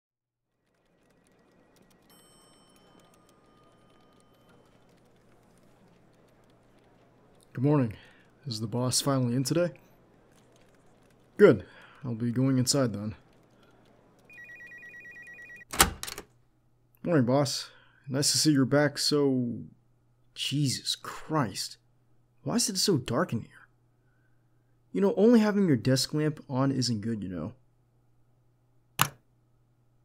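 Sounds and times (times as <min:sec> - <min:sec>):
small clicks: 0:00.6 - 0:14.8
telephone ringing trill: 0:00.7 - 0:07.3, 0:13.2 - 0:15.7
faint high-pitched tone: 0:14.2 - 0:15.6.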